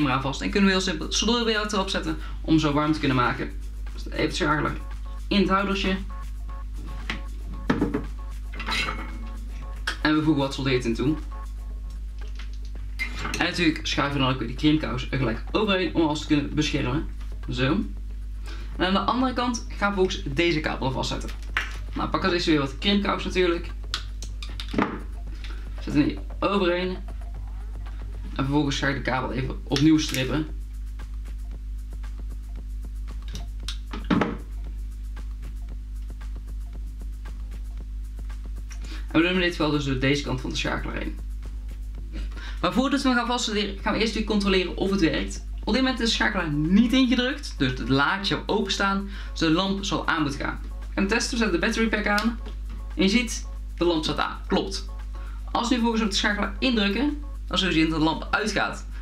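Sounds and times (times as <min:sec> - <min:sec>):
background music with steady beat: 0:00.0 - 0:59.0.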